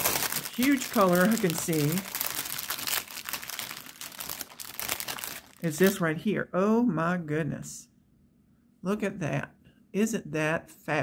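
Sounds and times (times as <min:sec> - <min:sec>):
plastic bag crinkling: 0:00.0 - 0:06.0.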